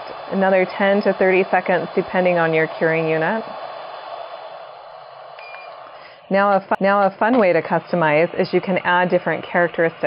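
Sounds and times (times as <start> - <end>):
dental curing light whirring: 0.0 - 10.0
short faint beep: 5.4 - 5.8.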